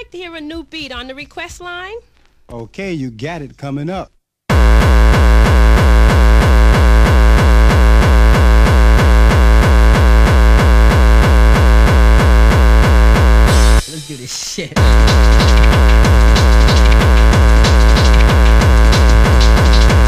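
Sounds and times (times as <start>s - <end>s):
distorted kick drum beat: 4.5s - 20.0s.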